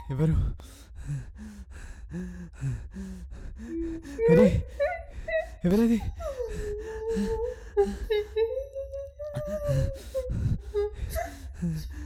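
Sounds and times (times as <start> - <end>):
person gasping and whimpering: 0.0 - 12.0.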